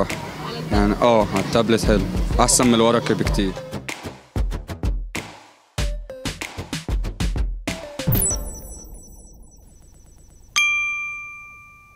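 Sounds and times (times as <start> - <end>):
bright chime ringing: 8.1 - 11.9.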